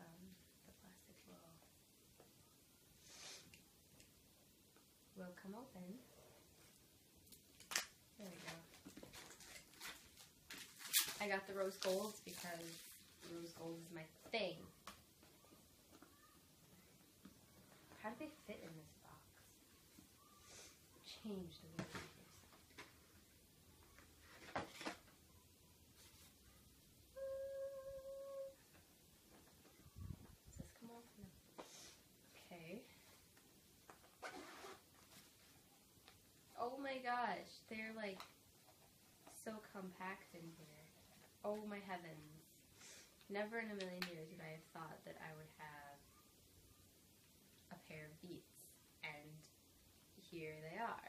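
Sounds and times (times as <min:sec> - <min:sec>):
plastic wrap ripping: 0:07.5 - 0:13.0
plastic wrap rustling: 0:07.5 - 0:13.6.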